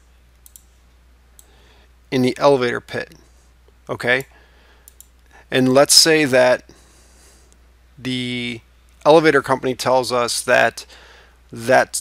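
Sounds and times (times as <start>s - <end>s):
computer mouse clicks: 0.4s - 0.7s, 4.2s - 5.2s.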